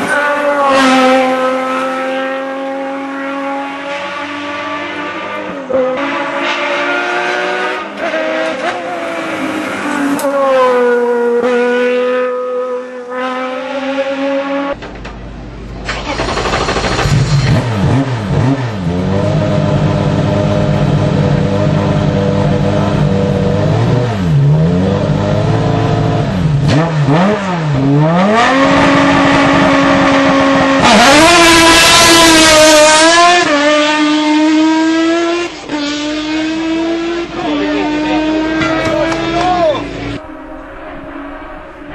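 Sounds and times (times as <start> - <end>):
high-revving engine accelerating: 0.0 - 14.8, 15.9 - 41.9
race car engine at full throttle: 0.0 - 41.9
engine throttle blips: 15.0 - 20.8.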